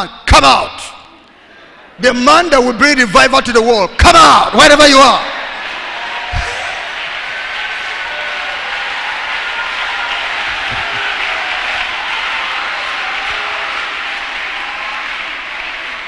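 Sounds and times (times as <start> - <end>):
crowd applauding: 5.4 - 16.0.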